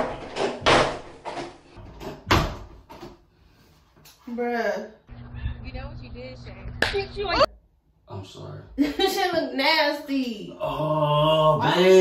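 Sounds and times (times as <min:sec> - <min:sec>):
door banging and rattling: 0:00.0 - 0:03.2.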